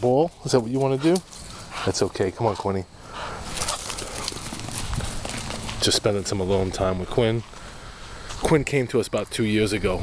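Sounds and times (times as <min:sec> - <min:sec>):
footsteps on grass: 0:03.4 - 0:08.8.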